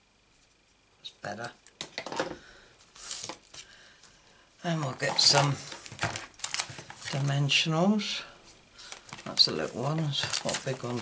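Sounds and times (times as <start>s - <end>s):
paper rustle: 5.0s - 7.3s, 8.8s - 11.0s.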